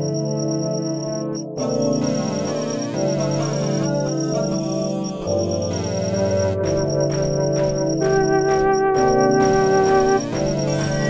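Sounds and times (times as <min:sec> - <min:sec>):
synth organ-like chords: 0:00.0 - 0:11.0.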